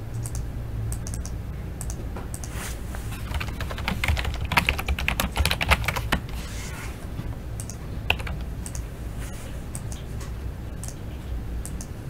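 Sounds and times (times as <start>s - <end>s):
steady low hum: 0.0s - 12.0s
keyboard key clicks: 7.6s - 8.8s.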